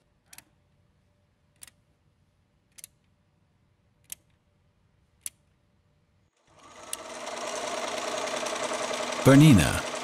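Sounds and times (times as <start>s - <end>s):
sewing machine stitching: 6.5s - 10.0s.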